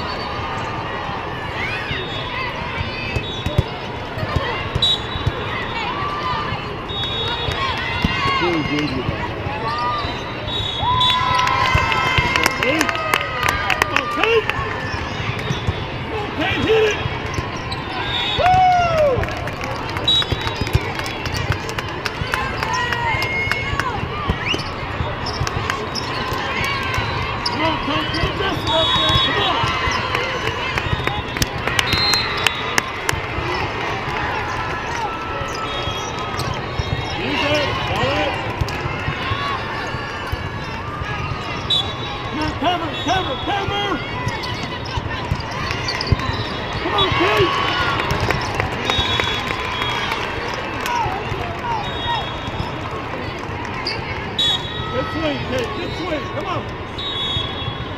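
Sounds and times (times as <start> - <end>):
hubbub of spectators' voices: 0.0 - 57.9
volleyballs struck and bouncing: 2.7 - 5.5, 7.5 - 9.6, 19.1 - 27.1, 29.0 - 35.0, 36.1 - 41.2, 44.3 - 48.9
short whistle blasts: 4.8 - 5.3, 10.3 - 11.3, 31.9 - 32.8, 51.7 - 52.6, 54.4 - 54.9, 57.0 - 57.9
sneakers squeaking on court: 7.0 - 10.8, 14.8 - 16.0, 16.8 - 18.4, 24.2 - 32.8, 34.4 - 42.1, 44.0 - 47.4.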